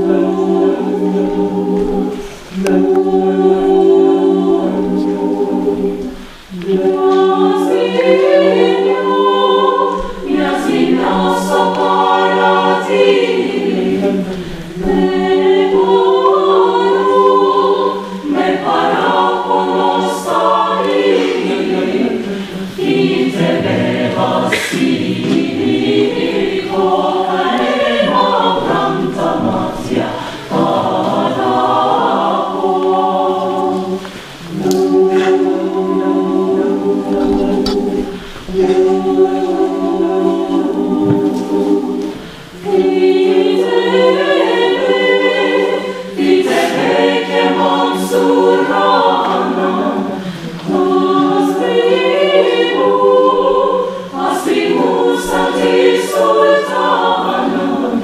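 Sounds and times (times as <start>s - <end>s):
mixed choir singing a cappella: 0.0s - 58.0s.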